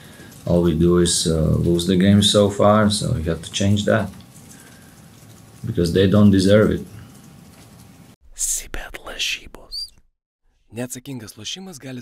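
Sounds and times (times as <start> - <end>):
person whispering voiceover: 8.3 - 10.0.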